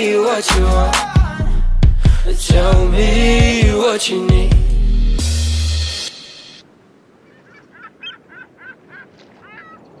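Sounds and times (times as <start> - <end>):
music: 0.0 - 6.6
faint outdoor hiss: 2.3 - 10.0
bird honking calls: 7.2 - 10.0.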